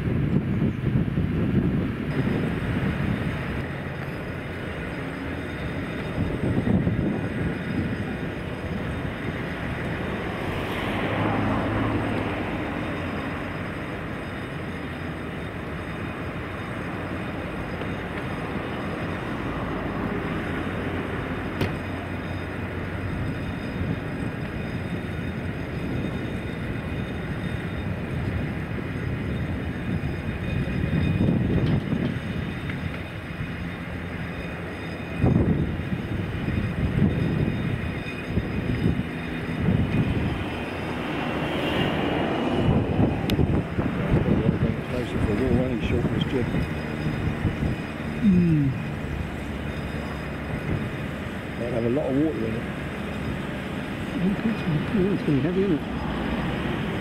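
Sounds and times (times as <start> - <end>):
crane engine running: 0.0 - 57.0
wind buffeting microphone: 0.0 - 57.0.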